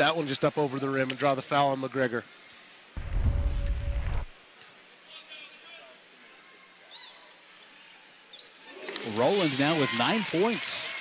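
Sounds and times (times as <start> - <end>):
loud low rumble: 3.0 - 4.3.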